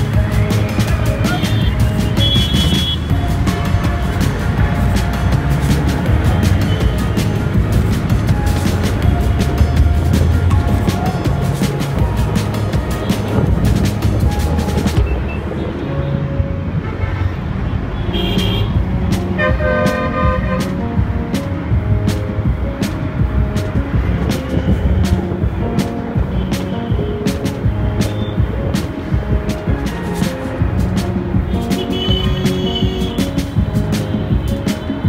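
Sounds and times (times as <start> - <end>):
music with steady beat: 0.0 - 15.5, 18.1 - 35.0
motorcycle and traffic noise: 0.0 - 35.0
vehicle horn: 1.3 - 3.1, 18.0 - 18.8, 19.4 - 20.8, 31.5 - 33.2.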